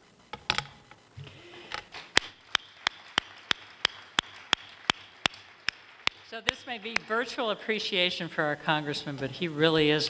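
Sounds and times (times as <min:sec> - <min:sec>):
hand clapping: 0:01.8 - 0:07.6.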